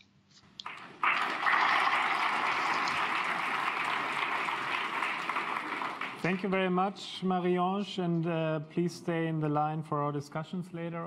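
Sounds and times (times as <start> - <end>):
audience applauding: 0.6 - 6.6.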